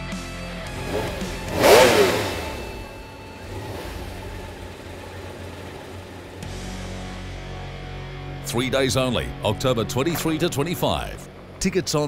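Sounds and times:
low background music: 0.0 - 12.0.

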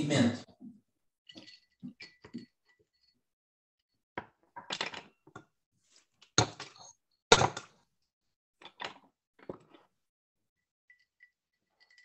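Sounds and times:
knocks and clinks of objects: 1.3 - 3.2, 10.9 - 12.0.

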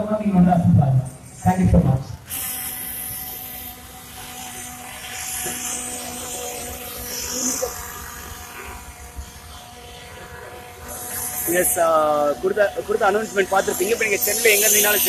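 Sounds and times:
small engines whining: 0.0 - 15.0
steady hum: 0.0 - 15.0.

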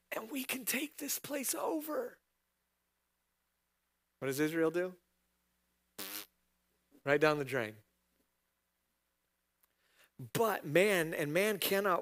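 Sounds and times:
man blowing raspberry: 6.0 - 6.3.

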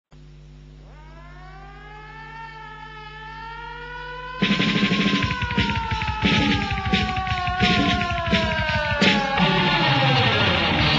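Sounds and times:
steady low hum: 0.1 - 9.8
air-raid siren winding up: 0.8 - 10.8.

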